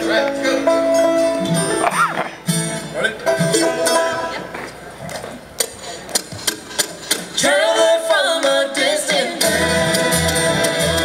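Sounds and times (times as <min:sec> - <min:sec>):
voices singing: 0:00.0 - 0:01.4, 0:07.4 - 0:11.0
mandolin: 0:00.0 - 0:08.6
guitar: 0:00.0 - 0:11.0
upright bass: 0:00.0 - 0:11.0.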